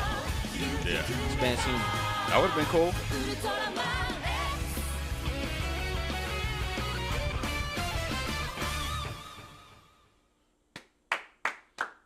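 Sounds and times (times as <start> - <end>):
hands clapping: 10.7 - 12.0.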